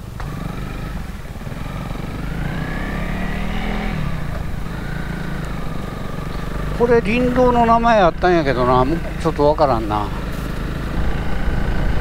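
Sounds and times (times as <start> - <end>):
motorcycle engine pulling away: 0.0 - 12.0.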